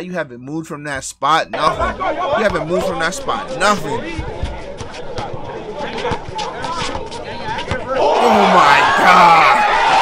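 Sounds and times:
crowd chatter: 0:01.6 - 0:10.0
basketball dribbling: 0:03.7 - 0:07.9.

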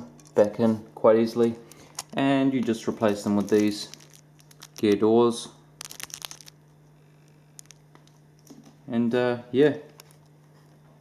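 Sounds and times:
low steady hum: 0:00.0 - 0:11.0
plastic bag crinkling: 0:01.6 - 0:08.6.

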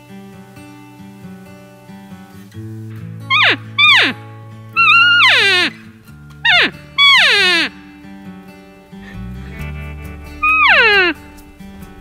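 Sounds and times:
background music: 0:03.2 - 0:12.0
elk mewing call: 0:03.3 - 0:04.2, 0:04.8 - 0:05.8, 0:06.5 - 0:07.7, 0:09.7 - 0:11.4.

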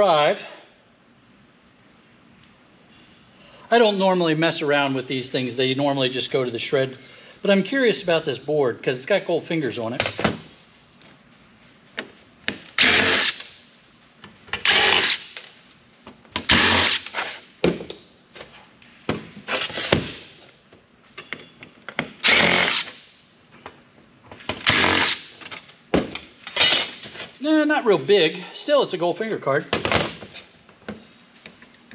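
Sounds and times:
impact driver running in bursts: 0:12.7 - 0:13.5, 0:14.6 - 0:15.4, 0:16.4 - 0:17.3, 0:22.2 - 0:22.9, 0:24.6 - 0:25.2.

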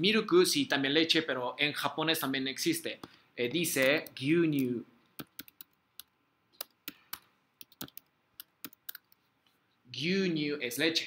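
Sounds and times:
keyboard typing: 0:03.8 - 0:09.3.

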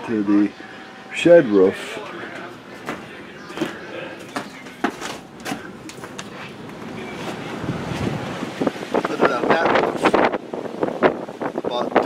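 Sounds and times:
wind buffeting microphone: 0:05.2 - 0:12.0.

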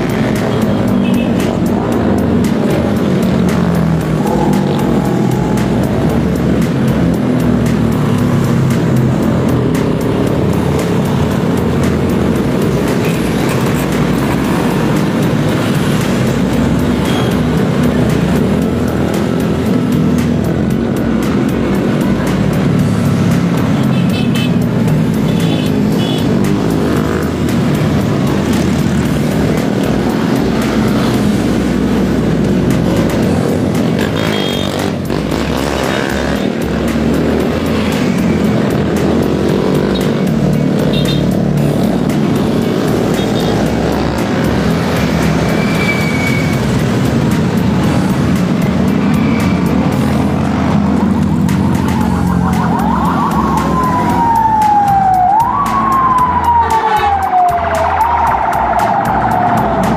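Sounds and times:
background music: 0:00.0 - 0:59.9.

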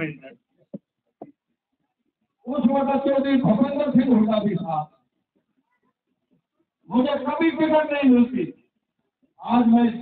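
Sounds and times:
man speaking: 0:00.0 - 0:00.4, 0:02.4 - 0:04.9.

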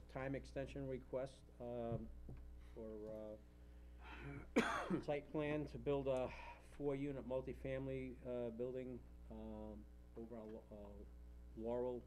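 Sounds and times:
man coughing loudly: 0:04.2 - 0:05.1
man saying uh: 0:05.0 - 0:11.0.

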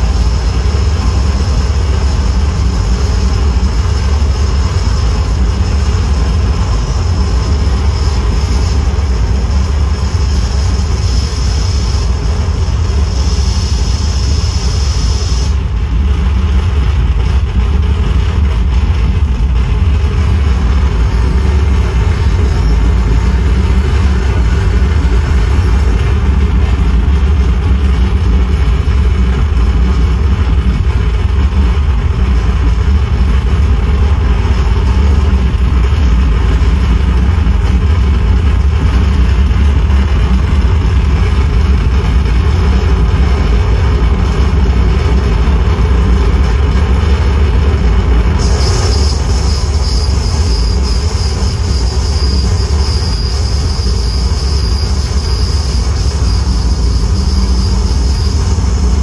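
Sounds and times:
harsh distorted noise: 0:00.0 - 0:59.0.

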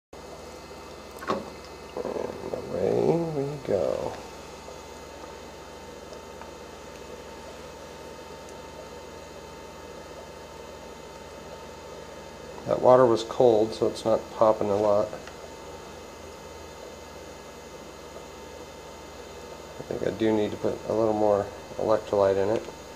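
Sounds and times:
faint electrical hum: 0:00.2 - 0:22.9.

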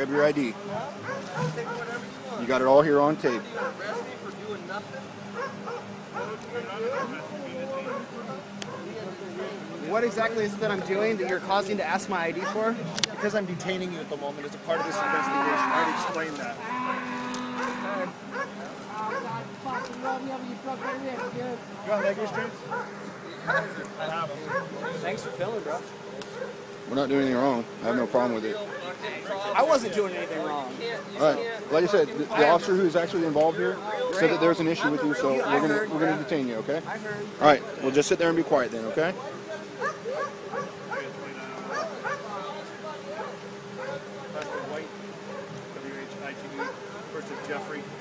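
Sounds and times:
people talking and calling out: 0:00.0 - 0:48.0
dog yipping: 0:01.0 - 0:01.8, 0:03.6 - 0:04.0, 0:05.4 - 0:07.2, 0:07.9 - 0:08.1, 0:17.6 - 0:20.0, 0:20.8 - 0:21.4, 0:22.0 - 0:22.9, 0:24.5 - 0:25.4, 0:39.8 - 0:41.1, 0:41.7 - 0:42.3.

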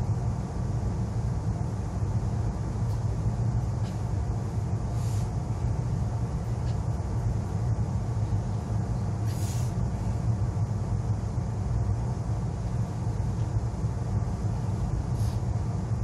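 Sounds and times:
train cabin hum: 0:00.0 - 0:16.0
brief hiss: 0:09.2 - 0:09.8.

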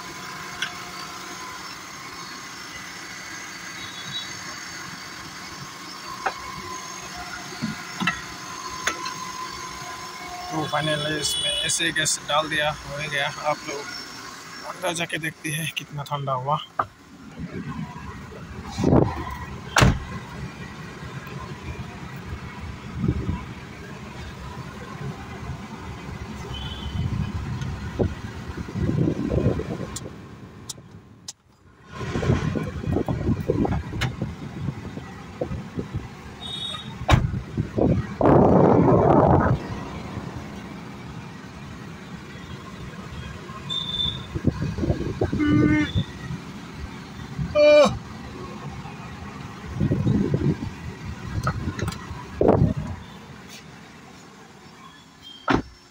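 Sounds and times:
rush of noise: 0:37.1 - 0:41.1.

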